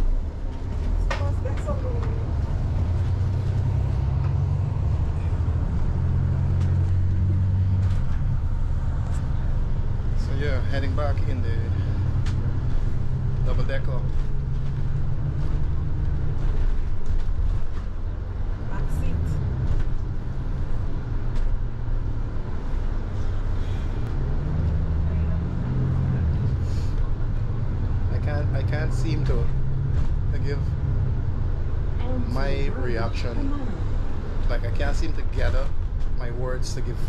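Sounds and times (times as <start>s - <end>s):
bus engine drone: 0.0s - 37.0s
voices: 1.0s - 2.4s, 18.6s - 19.4s, 32.0s - 37.0s.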